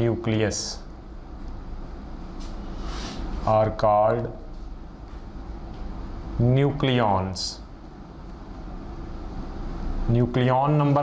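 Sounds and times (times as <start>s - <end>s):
room noise hum: 0.0s - 11.0s.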